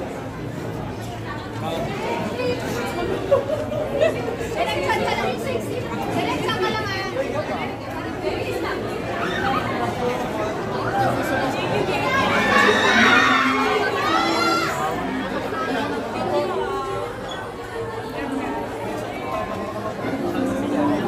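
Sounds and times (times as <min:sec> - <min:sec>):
crowd talking: 0:00.0 - 0:21.0.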